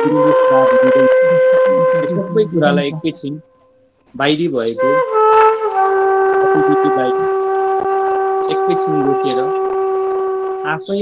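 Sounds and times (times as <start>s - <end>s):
long held music note: 0.0s - 3.4s, 4.2s - 11.0s
soft voice speaking: 0.0s - 3.4s, 4.2s - 5.0s, 6.6s - 7.2s, 8.5s - 9.5s, 10.7s - 11.0s.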